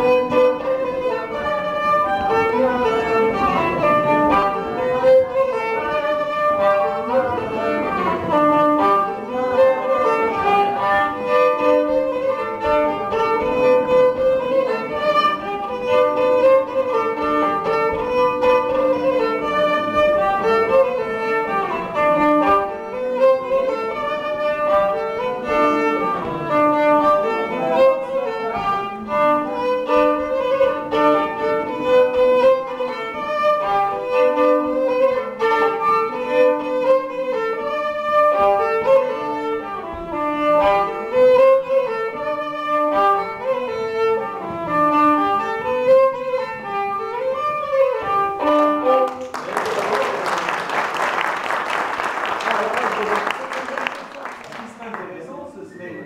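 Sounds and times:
solo violin folk tune: 0.0 - 56.0.

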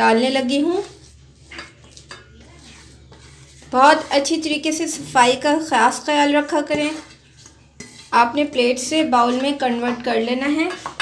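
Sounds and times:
dishes clinking: 1.5 - 2.7.

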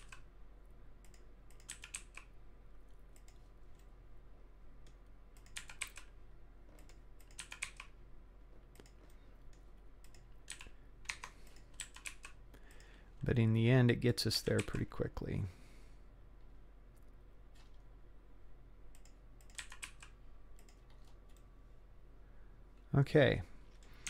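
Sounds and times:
computer keyboard keys clicking: 0.0 - 0.3, 1.0 - 2.3, 3.1 - 3.9, 5.4 - 6.1, 6.8 - 8.0, 8.7 - 12.9, 14.5 - 14.8, 18.9 - 21.4
faint low hum: 0.0 - 24.0.

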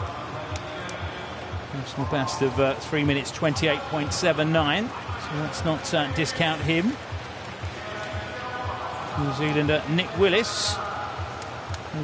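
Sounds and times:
public-address music with steady beat: 0.0 - 12.0
stadium crowd murmur: 0.0 - 12.0.

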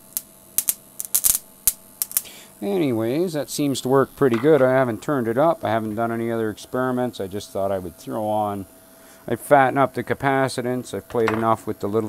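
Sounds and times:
spark gap snapping clicks: 0.0 - 2.3
faint electrical hum: 0.0 - 12.0.

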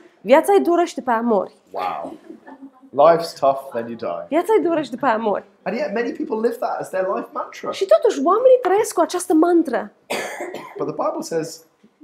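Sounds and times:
person speaking: 1.7 - 8.5
person coughing: 10.1 - 11.0.

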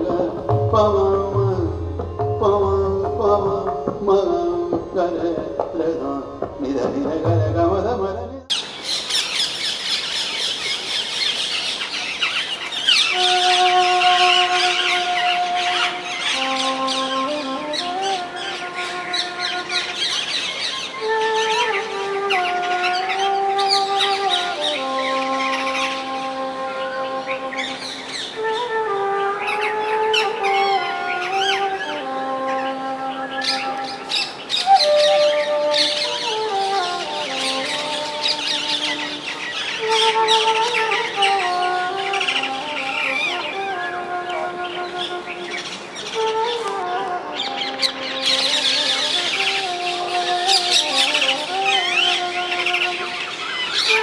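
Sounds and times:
birds chirping: 0.0 - 54.0
bamboo flute slow melody: 12.8 - 54.0.

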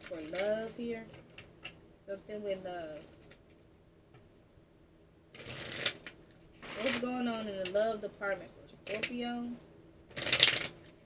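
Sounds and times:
cards being shuffled: 5.4 - 7.8, 10.1 - 11.0.

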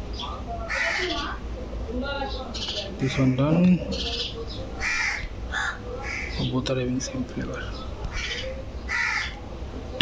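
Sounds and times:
crow cawing: 0.7 - 1.4, 4.8 - 6.4, 8.1 - 9.4.

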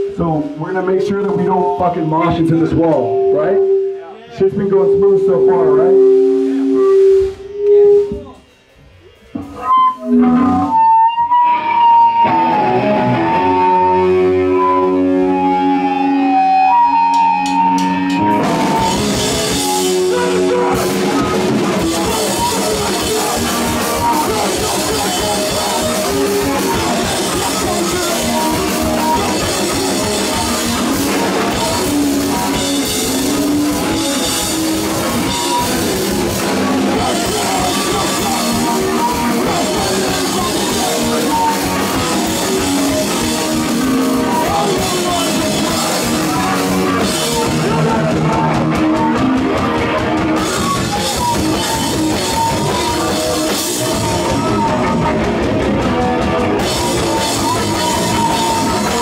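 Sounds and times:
distorted guitar and bass chords: 0.0 - 8.4, 9.2 - 59.0
punk band playing with drums: 0.0 - 8.6, 9.2 - 59.0.

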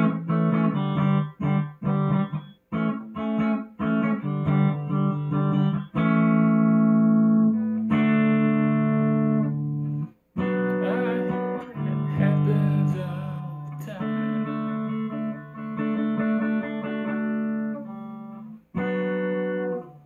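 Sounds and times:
electric guitar strumming chords: 0.0 - 20.0.

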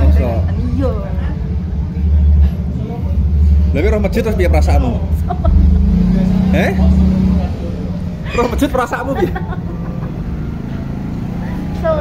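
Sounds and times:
loud low hum and rumble: 0.0 - 12.0.

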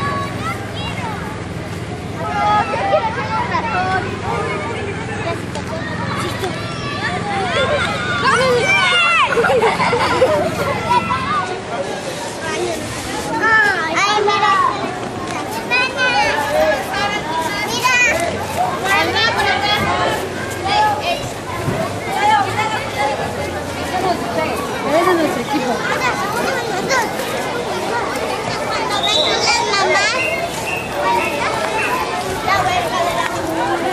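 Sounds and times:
young children chattering: 0.0 - 33.9.

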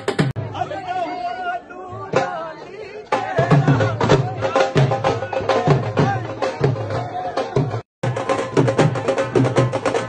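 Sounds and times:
crowd chattering and calling out: 0.0 - 10.0
fast barrel drum strokes: 3.2 - 10.0.

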